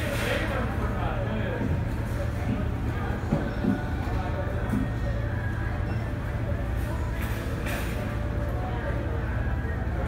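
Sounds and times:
faint background voices: 0.0s - 10.0s
steady low hum: 0.0s - 10.0s.

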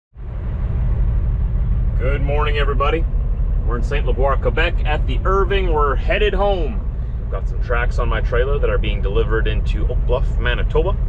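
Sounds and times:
diesel truck engine idling: 0.2s - 11.0s.

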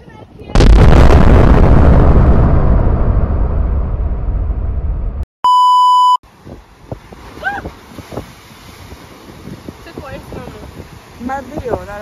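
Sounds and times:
electronic censor bleep: 5.4s - 6.2s
wind rumble on microphone: 6.3s - 12.0s.

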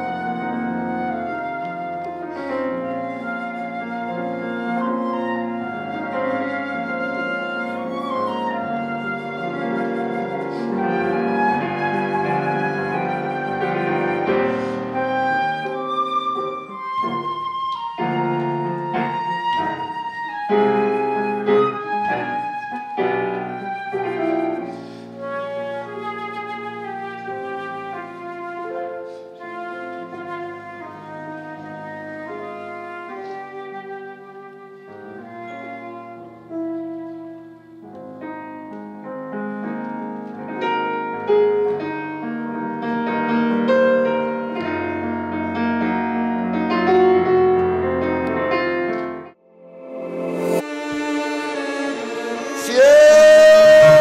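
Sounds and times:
flute melody: 0.0s - 54.0s
piano accompaniment: 0.0s - 54.0s.

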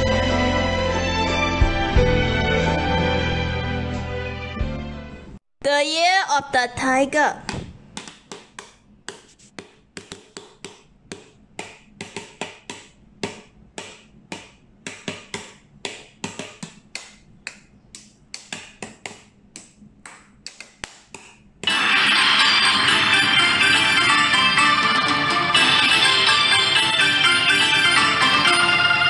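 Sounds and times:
loud music: 0.0s - 5.0s, 21.7s - 29.0s.

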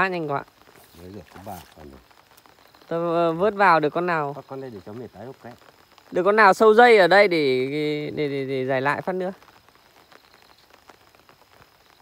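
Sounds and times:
light rain on pond: 0.0s - 12.0s.

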